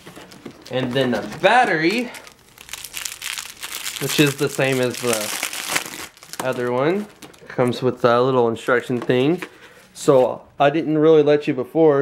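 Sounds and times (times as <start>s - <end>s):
plastic wrapping crinkling: 0.0s - 8.2s.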